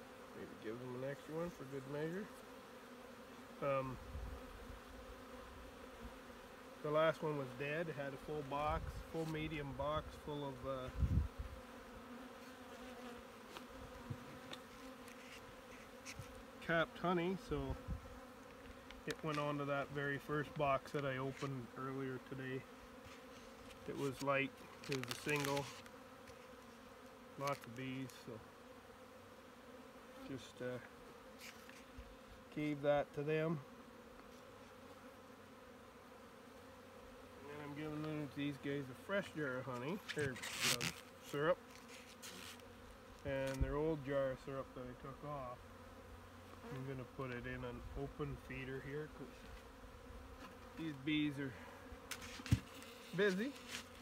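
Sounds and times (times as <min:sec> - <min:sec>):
honeybees buzzing: 0:00.0 - 0:54.0.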